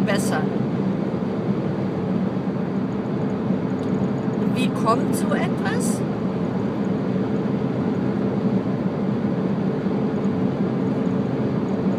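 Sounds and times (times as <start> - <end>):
car road and engine noise: 0.0 - 11.9.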